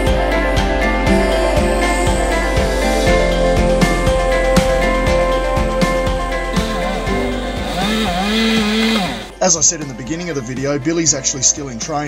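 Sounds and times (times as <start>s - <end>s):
background music: 0.0s - 12.0s
chainsaw cutting wood: 6.6s - 9.3s.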